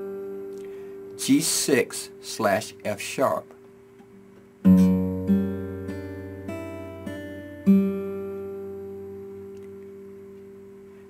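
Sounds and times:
clean electric guitar fingerpicking: 0.0s - 11.0s.

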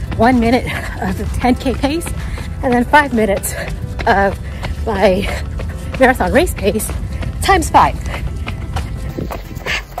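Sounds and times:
background music: 0.0s - 10.0s
footsteps on concrete: 0.0s - 10.0s
wind rumble on microphone: 5.2s - 10.0s.

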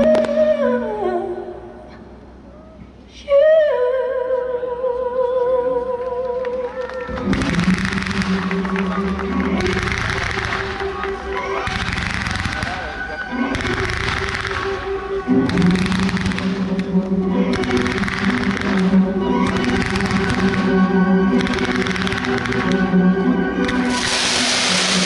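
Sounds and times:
firework bursts: 11.6s - 14.8s, 23.6s - 25.0s
music with sustained low notes: 12.8s - 25.0s.

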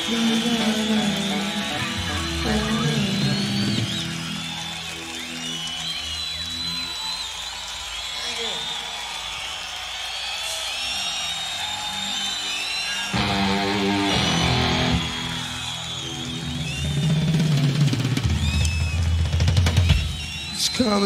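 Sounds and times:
rock band playing: 0.0s - 5.5s, 13.1s - 20.4s
sliding guitar squeals: 12.4s - 17.2s.

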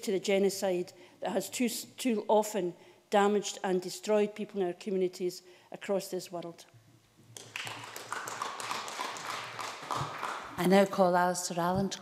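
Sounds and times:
hands clapping: 7.4s - 10.7s.

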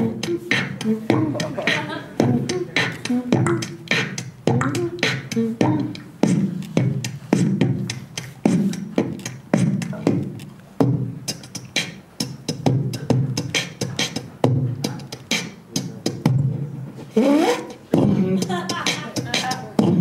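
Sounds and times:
beatboxing into a microphone: 0.0s - 20.0s.

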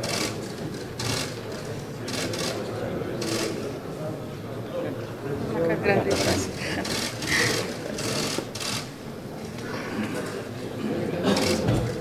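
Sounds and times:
camera shutters clicking rapidly: 0.0s - 2.6s, 6.1s - 9.0s.

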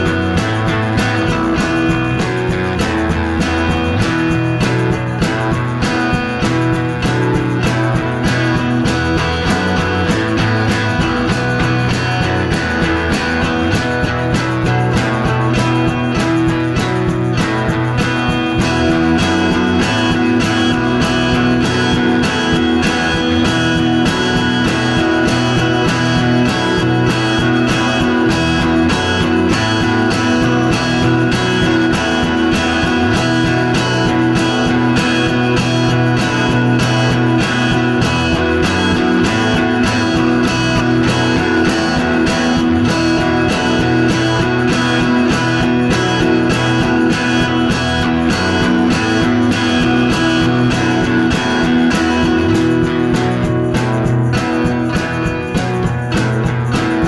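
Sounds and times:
instrumental rock music: 0.0s - 57.0s.

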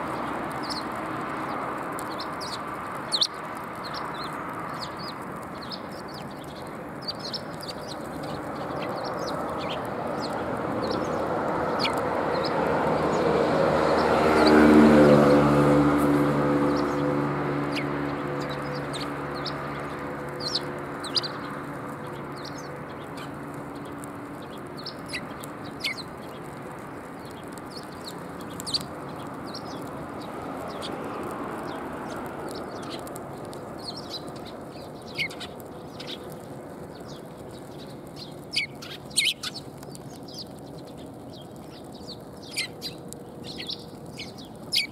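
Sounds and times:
sparrows chirping: 0.0s - 44.9s.

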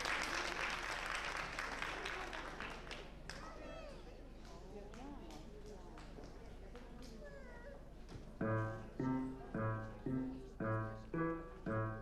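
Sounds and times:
audience murmur and rustle: 0.0s - 12.0s.

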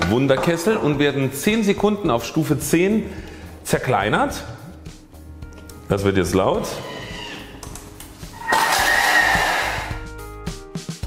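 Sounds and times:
background music: 0.0s - 11.0s
blender blades chopping: 8.4s - 10.0s.

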